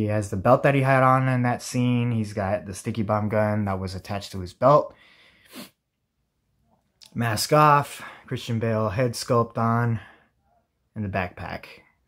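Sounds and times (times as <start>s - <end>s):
man sniffing sharply: 5.0s - 5.8s.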